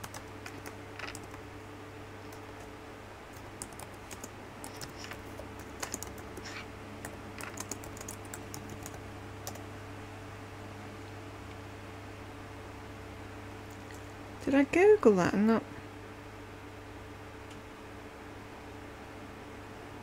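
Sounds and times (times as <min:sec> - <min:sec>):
typing on keyboard: 0:00.0 - 0:01.4, 0:03.3 - 0:09.6
low electrical hum: 0:00.0 - 0:20.0.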